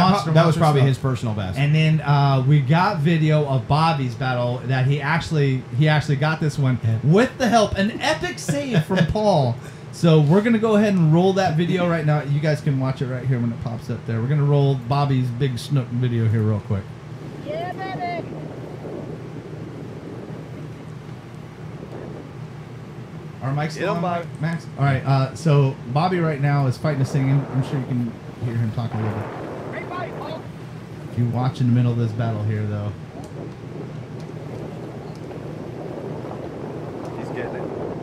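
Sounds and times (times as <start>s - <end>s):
constant low hum: 0.0s - 38.0s
wind buffeting microphone: 0.0s - 38.0s.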